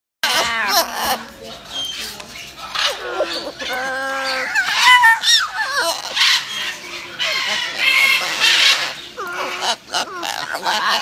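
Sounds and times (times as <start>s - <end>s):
macaws warbling calls: 0.2s - 11.0s.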